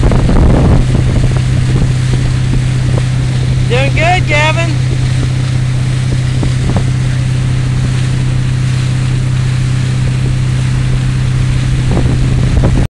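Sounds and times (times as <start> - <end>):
motorboat engine drone: 0.0 - 12.9
rushing water: 0.0 - 12.9
wind noise on microphone: 0.0 - 12.9.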